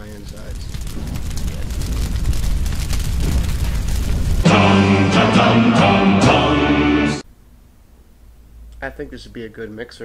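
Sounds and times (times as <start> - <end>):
fire roaring and crackling: 0.0 - 7.2.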